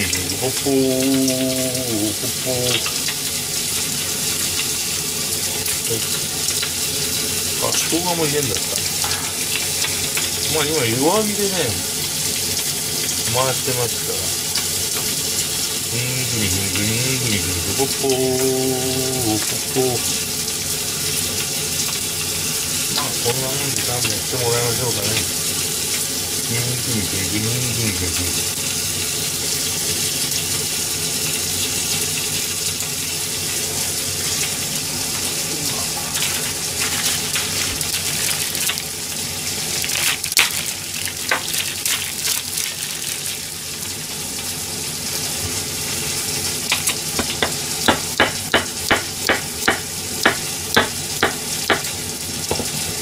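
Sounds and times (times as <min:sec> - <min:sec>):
meat sizzling in a pan: 0:00.0 - 0:53.0
knife chopping on cutting board: 0:47.2 - 0:51.8.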